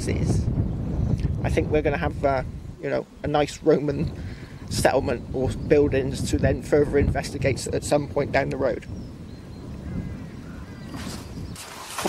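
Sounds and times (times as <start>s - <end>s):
wind rumble on microphone: 0.0s - 12.0s
rustling: 11.0s - 12.0s.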